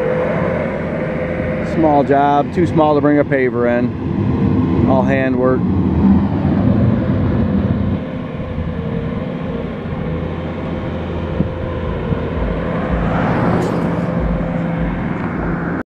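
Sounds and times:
paving machinery engines rumbling: 0:00.0 - 0:15.8.

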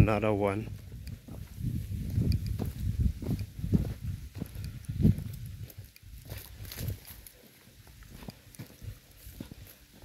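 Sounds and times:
footsteps on dry earth: 0:00.0 - 0:10.0.

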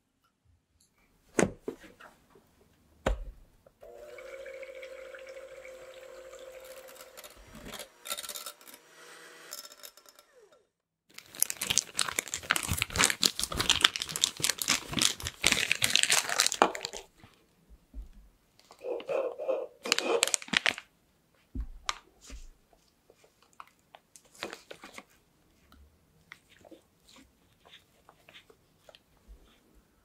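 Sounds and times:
electric hand mixer humming: 0:03.8 - 0:10.8
crackling squishing handling noise: 0:11.1 - 0:17.4, 0:19.8 - 0:20.9, 0:21.8 - 0:29.7.

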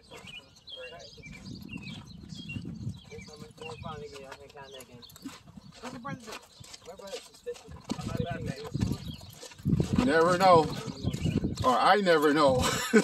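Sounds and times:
horse hooves clopping: 0:00.0 - 0:13.0.

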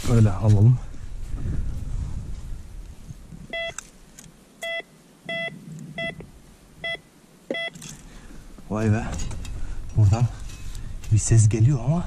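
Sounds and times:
metal detector short beeps: 0:03.5 - 0:03.8, 0:04.6 - 0:06.2, 0:06.8 - 0:07.8.

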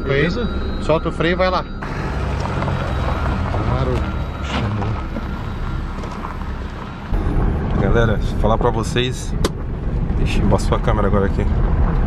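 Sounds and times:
vehicle driving away: 0:01.7 - 0:12.0.

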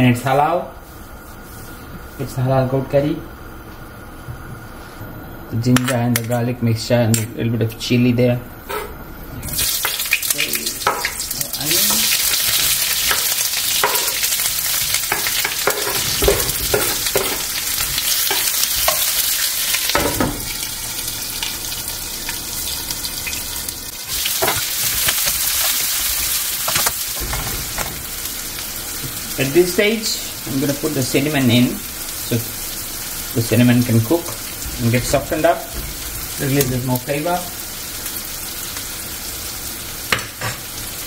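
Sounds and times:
onions sizzling in a wok: 0:09.4 - 0:41.0.

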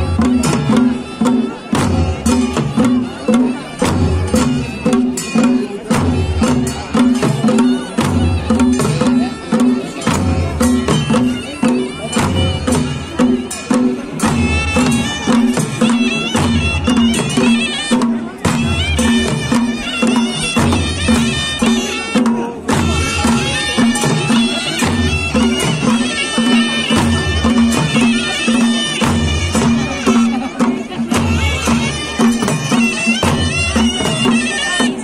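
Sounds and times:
large drums beating: 0:00.0 - 0:35.0.

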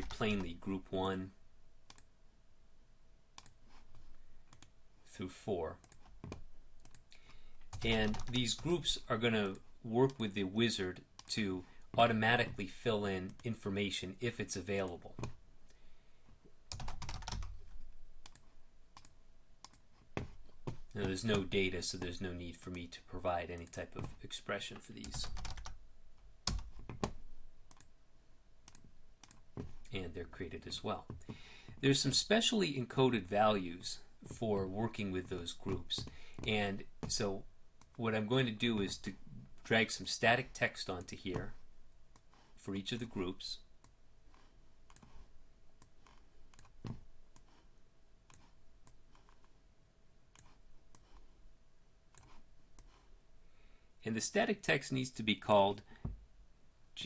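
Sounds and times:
keyboard and mouse clicks: 0:01.9 - 0:02.1, 0:03.4 - 0:03.6, 0:04.5 - 0:04.7, 0:05.8 - 0:08.7, 0:16.7 - 0:21.5, 0:26.4 - 0:27.9, 0:28.6 - 0:29.9, 0:43.8 - 0:45.2, 0:45.8 - 0:47.6.

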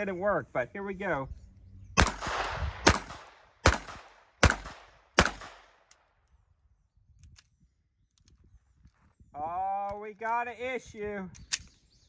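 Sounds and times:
pistol shots with echo: 0:02.0 - 0:05.9.

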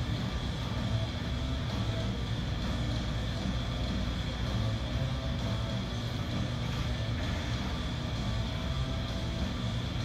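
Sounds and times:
low rumble of room noise: 0:00.0 - 0:10.0.

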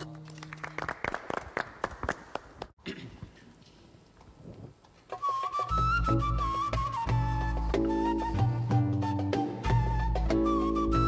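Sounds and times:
small group clapping: 0:00.0 - 0:02.8.

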